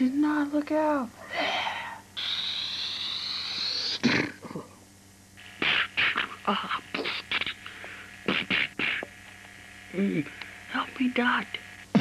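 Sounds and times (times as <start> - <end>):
mouth-made hissing screech: 1.5 - 4.0
short sharp mouth bursts: 5.6 - 9.4.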